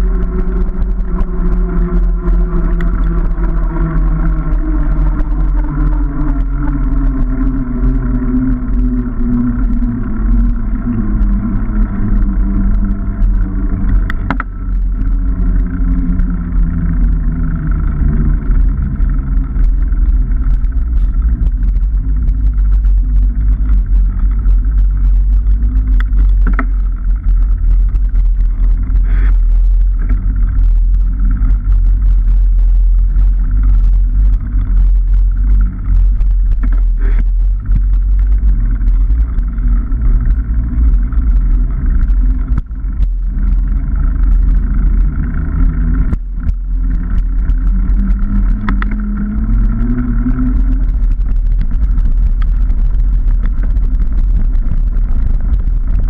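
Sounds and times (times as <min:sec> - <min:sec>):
bicycle tyre rolling on tarmac: 0:00.0 - 0:56.0
bike clicks and knocks over bumps: 0:00.0 - 0:56.0
heavy wind rumble on microphone: 0:00.0 - 0:56.0
hum falling in pitch: 0:00.0 - 0:56.0.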